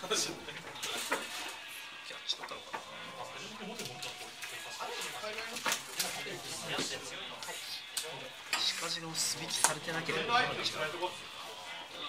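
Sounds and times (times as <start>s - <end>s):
faint chatter: 0.0s - 12.0s
cards clicking and rustling: 3.7s - 8.1s.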